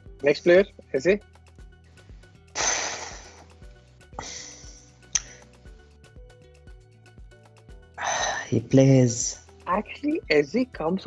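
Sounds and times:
quiet background music: 0.0 - 11.0
person sighing: 2.6 - 3.5, 4.2 - 5.4, 8.0 - 8.5.

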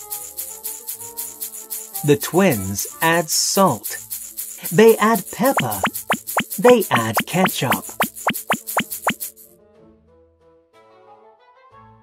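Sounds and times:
shaker: 0.0 - 9.5
children's background music: 4.9 - 9.2
cartoon plops: 5.5 - 9.2.

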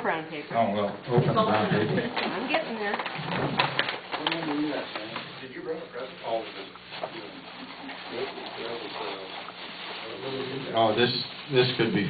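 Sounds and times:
murmuring voices: 1.2 - 10.8
wrapping paper rustling: 2.1 - 12.0.

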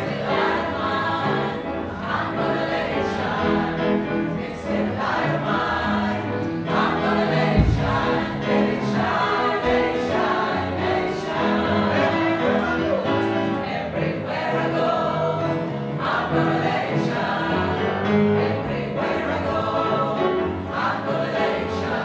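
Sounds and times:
mixed choir singing in parts: 0.0 - 22.0
low thump: 7.5 - 8.4.

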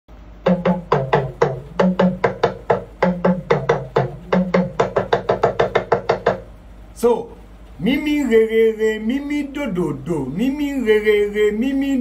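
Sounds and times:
talking drum strokes: 0.4 - 6.6.

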